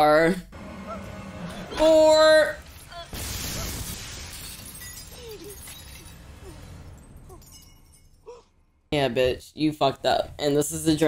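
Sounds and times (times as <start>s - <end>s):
hiss of falling glass and sparks: 2.6s - 6.2s
light fixture shattering: 2.6s - 8.1s.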